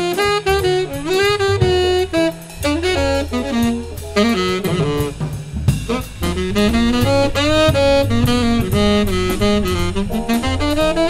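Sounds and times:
bass: 0.0 - 11.0
drum kit: 0.0 - 11.0
tenor saxophone jazz solo: 0.0 - 11.0.

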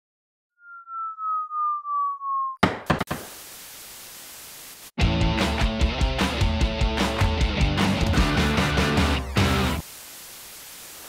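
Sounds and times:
pulsing tone sliding down in pitch: 0.6 - 2.6
tv static hiss: 3.1 - 5.0, 9.2 - 11.0.

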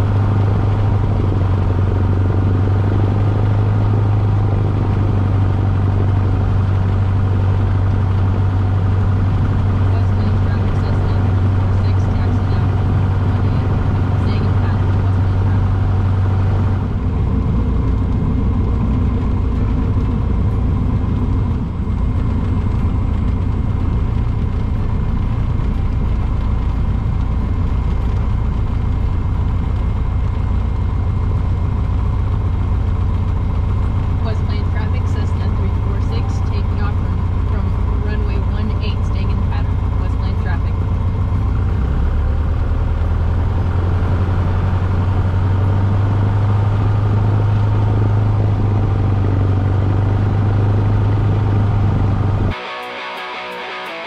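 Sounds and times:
light aircraft engine droning: 0.0 - 54.0.

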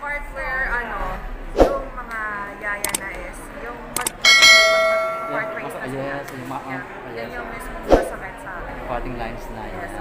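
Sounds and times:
short click: 2.8 - 3.0
bright bell ding: 4.1 - 5.9.

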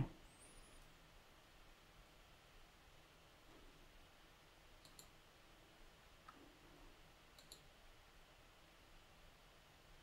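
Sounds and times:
computer mouse clicks: 4.8 - 5.2, 7.3 - 7.7.

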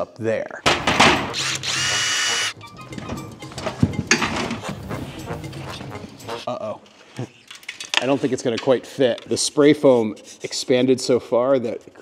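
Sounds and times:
power drill whirring: 1.3 - 2.6.

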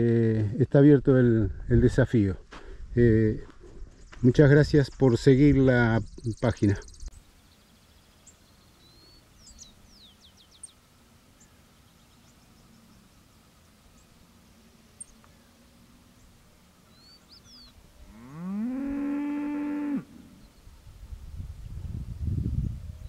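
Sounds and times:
birds chirping: 3.9 - 20.9.

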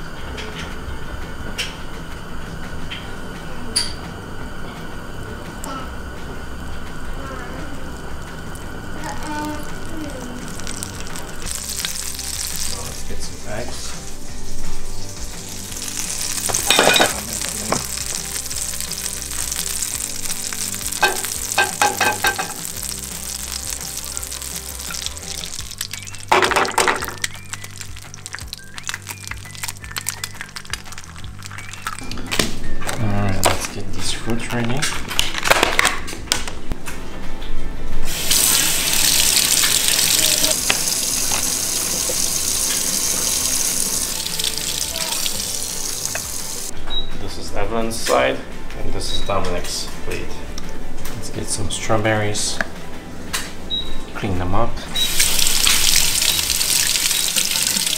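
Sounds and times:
butter sizzling in a frying pan: 7.7 - 32.0, 38.1 - 46.7, 55.0 - 57.9.

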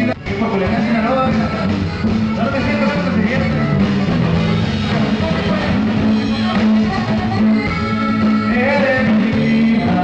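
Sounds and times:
bass: 0.0 - 10.0
button accordion: 0.0 - 10.0
drums: 0.0 - 10.0
guitars: 0.0 - 10.0.

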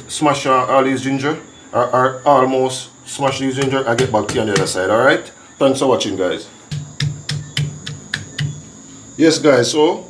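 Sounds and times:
bottle pounding on cutting board: 3.3 - 4.8, 6.7 - 8.6.

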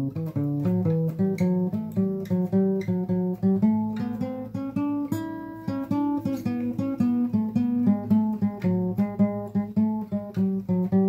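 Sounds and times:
guitar picked notes: 0.0 - 11.0.

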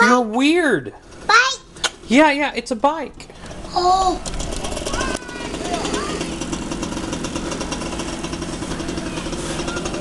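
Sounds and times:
dirt bike engine running: 1.0 - 10.0.

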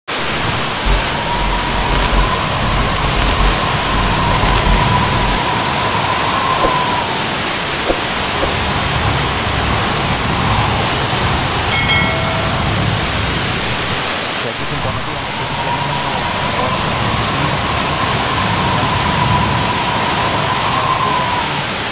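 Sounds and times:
waterfall rushing: 0.1 - 5.5
short tone: 0.8 - 5.4.

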